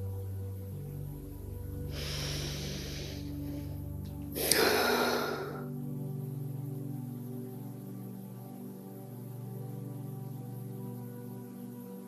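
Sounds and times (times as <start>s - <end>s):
soft ambient music: 0.0s - 12.0s
woman breathing: 1.8s - 5.9s.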